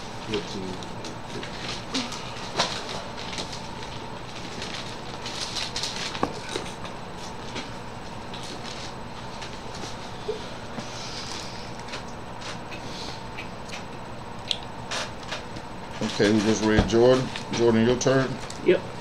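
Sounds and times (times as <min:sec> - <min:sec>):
faint hum: 0:00.0 - 0:19.0.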